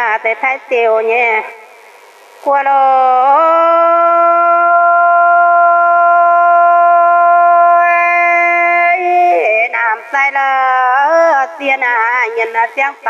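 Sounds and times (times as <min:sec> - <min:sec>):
woman singing: 0:02.4 - 0:13.0.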